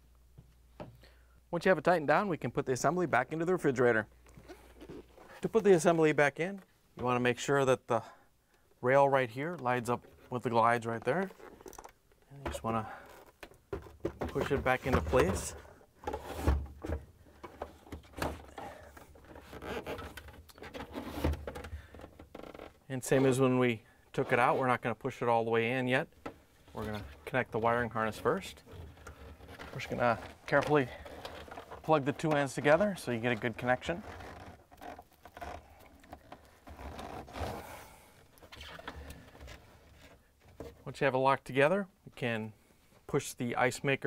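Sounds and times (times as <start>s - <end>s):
plastic rubbing and scraping: 9.5s - 23.5s, 26.2s - 40.9s
plastic connector scraping: 28.1s - 37.7s.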